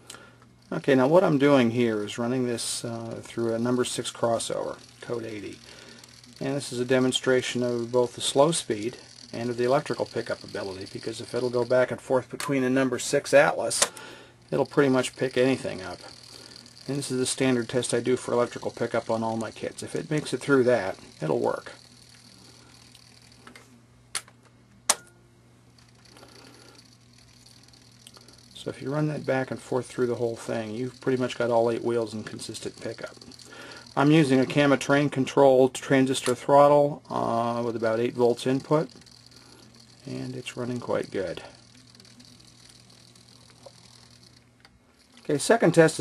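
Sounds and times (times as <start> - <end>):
sharp clicks of track: 0.0 - 22.3, 25.8 - 35.1
model train motor hum: 0.0 - 23.6, 25.8 - 46.0.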